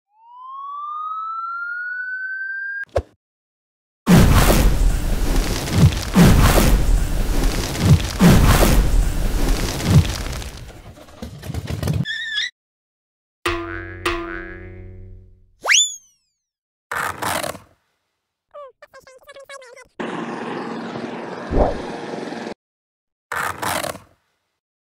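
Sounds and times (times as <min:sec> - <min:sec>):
siren-like rising tone: 0:00.1 - 0:02.9, 0:20.0 - 0:22.2.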